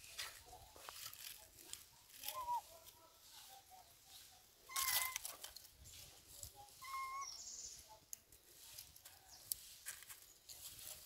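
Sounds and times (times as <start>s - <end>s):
scuffling rustle: 0.0s - 7.3s, 8.4s - 11.0s.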